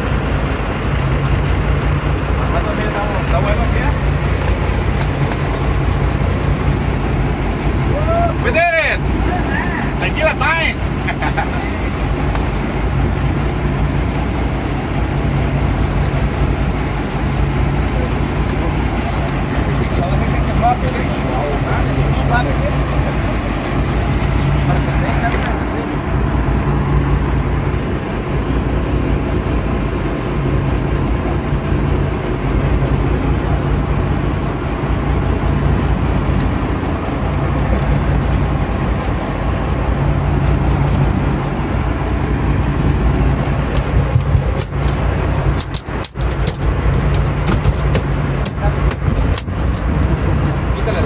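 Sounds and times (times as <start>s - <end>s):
boat engine droning: 0.0s - 51.0s
sharp knocks and bumps: 46.1s - 49.8s.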